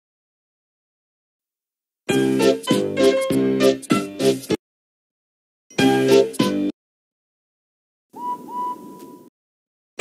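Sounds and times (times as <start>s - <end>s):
steam locomotive whistle: 8.2s - 9.3s.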